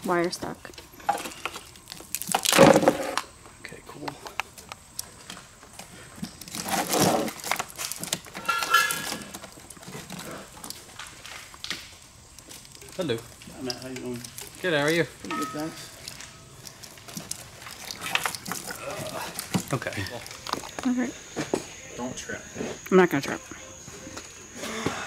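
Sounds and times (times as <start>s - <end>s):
wiring harness rustling and scraping: 4.6s - 11.7s, 12.4s - 20.8s.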